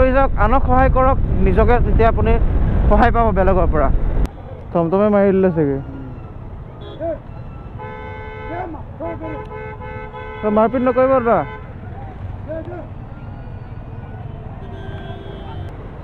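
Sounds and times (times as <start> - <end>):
man talking: 0.0 - 4.0, 8.4 - 9.5, 10.4 - 13.0
motorcycle rumble: 0.0 - 4.7, 11.5 - 16.0
street noise: 0.0 - 16.0
wind: 0.0 - 16.0
vehicle horn sounding steadily: 6.7 - 11.8, 13.2 - 15.7.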